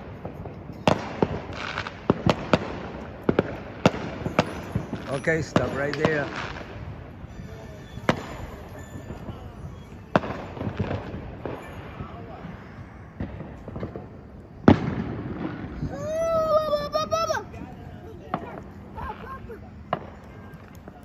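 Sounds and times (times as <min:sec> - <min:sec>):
fireworks banging with echo: 0:00.0 - 0:21.0.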